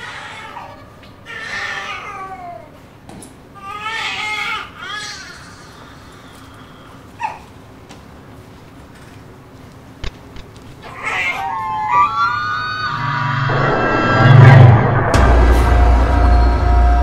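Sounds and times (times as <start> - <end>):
long wailing cries: 10.8 - 14.7.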